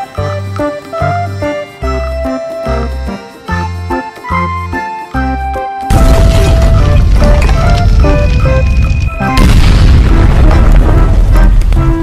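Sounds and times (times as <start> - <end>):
background music: 0.0 - 12.0
explosion rumble: 5.9 - 12.0.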